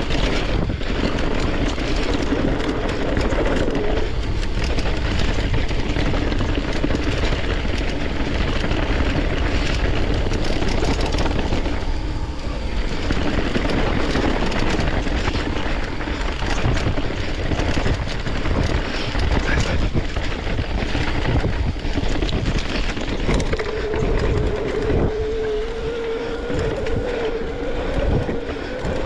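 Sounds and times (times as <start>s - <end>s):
bike rolling and rattling: 0.0s - 29.0s
wind rumble on microphone: 0.0s - 29.0s.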